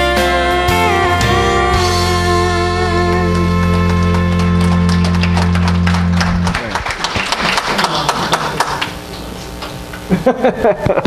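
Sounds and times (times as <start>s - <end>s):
instrumental final chord: 0.0s - 6.7s
congregation applauding: 3.3s - 9.7s.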